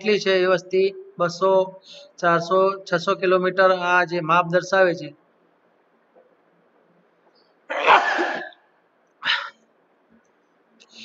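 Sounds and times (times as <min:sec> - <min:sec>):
man coughing: 0:07.7 - 0:09.6.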